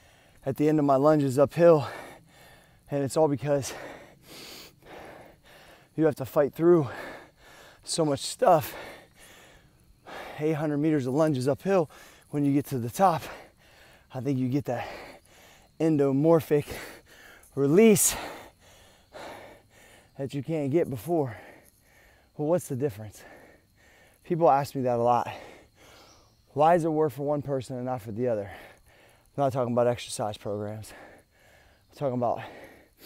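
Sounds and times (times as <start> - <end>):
man breathing hard: 0.0 - 0.4, 1.8 - 2.9, 3.6 - 6.0, 6.7 - 7.9, 8.5 - 10.4, 11.9 - 12.3, 13.2 - 14.1, 14.8 - 15.8, 16.6 - 20.2, 21.2 - 22.4, 23.1 - 24.2, 25.2 - 26.5, 28.4 - 29.4, 30.8 - 33.0.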